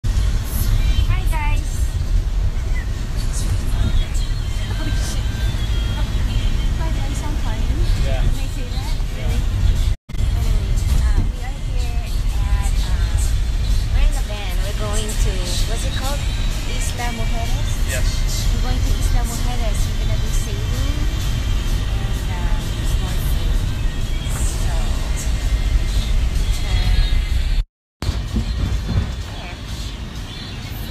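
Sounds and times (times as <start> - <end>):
van rumbling from inside: 0.0 - 30.9.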